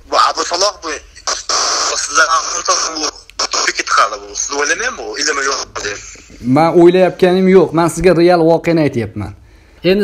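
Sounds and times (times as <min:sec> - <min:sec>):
man speaking over phone line: 0:00.0 - 0:06.1.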